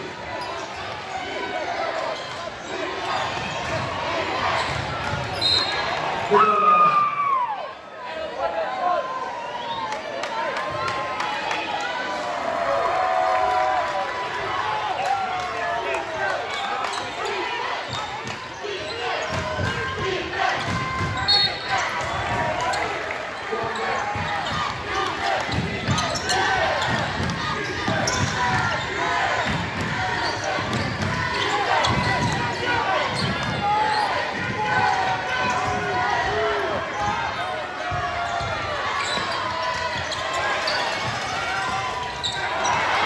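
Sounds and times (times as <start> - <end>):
crowd talking and shouting: 0.0 - 43.0.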